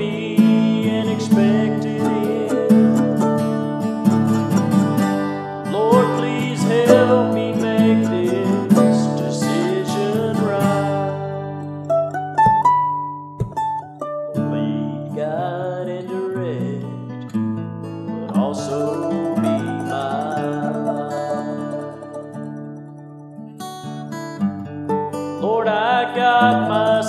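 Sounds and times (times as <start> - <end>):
acoustic guitars strumming: 0.0 - 27.0
picked guitar notes: 0.0 - 27.0.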